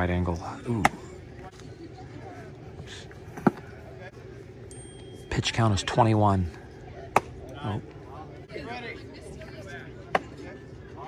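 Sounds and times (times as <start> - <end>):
players and spectators chatting: 0.0 - 11.0.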